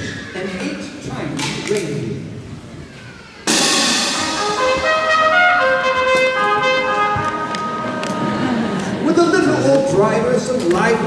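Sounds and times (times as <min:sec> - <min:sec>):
concert band playing: 0:03.4 - 0:11.0.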